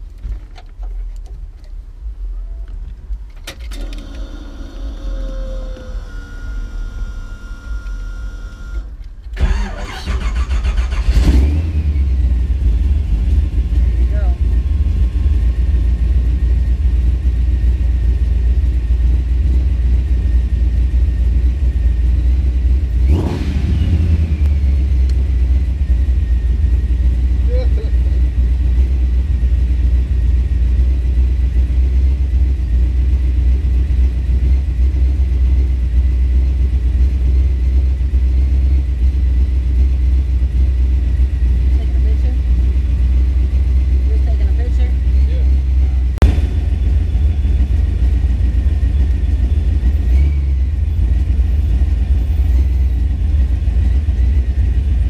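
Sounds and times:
engine idling with low rumble: 0:00.0 - 0:55.0
engine cranking and firing: 0:02.7 - 0:13.8, 0:45.7 - 0:55.0
engine throttle blip: 0:05.0 - 0:12.6, 0:22.8 - 0:26.9, 0:44.9 - 0:53.2.

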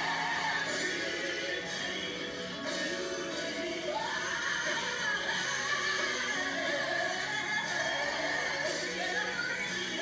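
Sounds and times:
woman singing gospel into microphone: 0:00.0 - 0:10.0.

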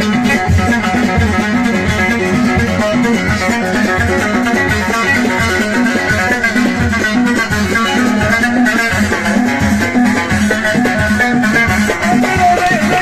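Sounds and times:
lute plucked rapidly: 0:00.0 - 0:13.0.

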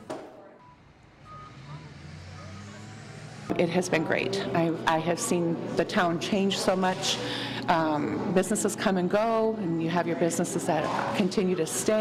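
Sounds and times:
faint vehicle engine hum: 0:00.6 - 0:04.8.

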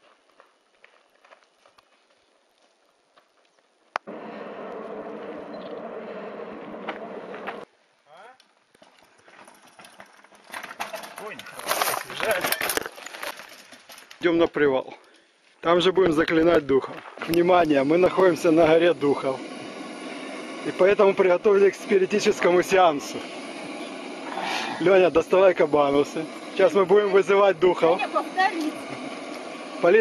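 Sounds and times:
steady noise: 0:02.9 - 0:08.0, 0:16.2 - 0:30.0
bike rattling over rocks: 0:08.8 - 0:14.4.

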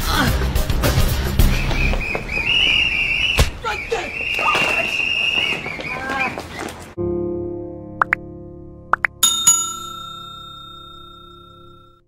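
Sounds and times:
bell-like notification chime: 0:09.2 - 0:12.0.

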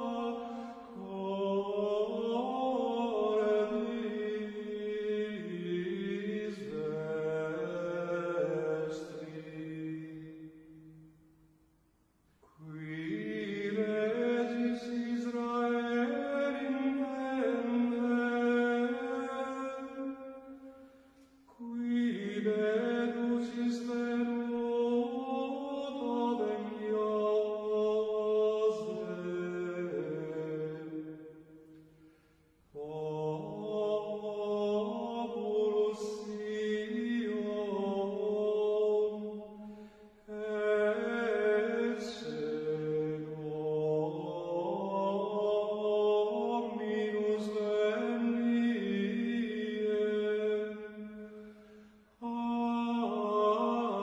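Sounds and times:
voices chanting in unison: 0:32.8 - 0:51.2.

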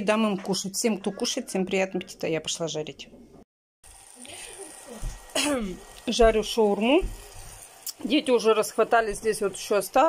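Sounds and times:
food sizzling in a pan: 0:03.8 - 0:10.0.

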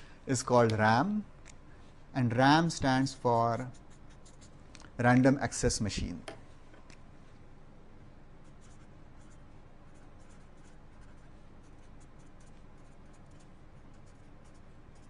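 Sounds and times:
low room hum: 0:00.0 - 0:15.0
marker pen writing on paper: 0:03.6 - 0:04.6, 0:08.4 - 0:15.0.

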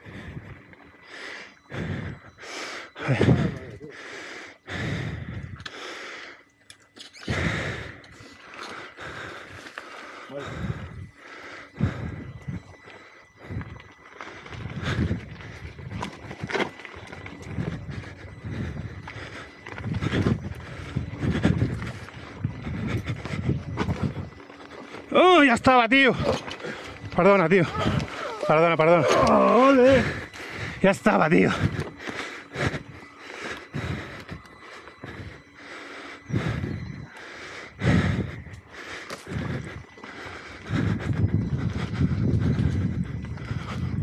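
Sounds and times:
person breathing heavily: 0:00.0 - 0:44.0
tyre and trail noise: 0:00.0 - 0:44.0.

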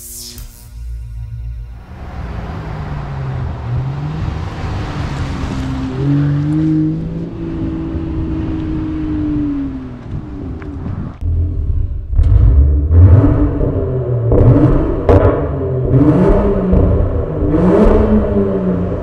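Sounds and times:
car engine revving: 0:01.0 - 0:19.0.

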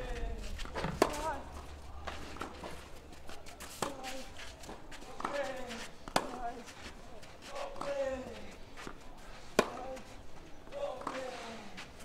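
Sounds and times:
tennis racket striking ball: 0:00.5 - 0:01.4.

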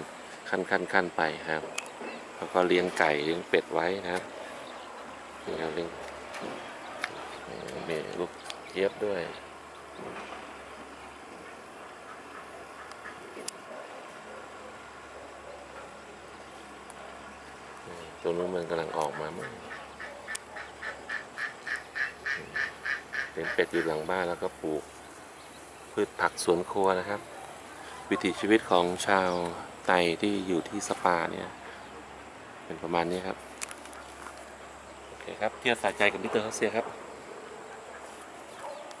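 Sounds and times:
distant animal calling: 0:02.0 - 0:32.5
ducks quacking: 0:11.4 - 0:13.5, 0:17.9 - 0:24.8.

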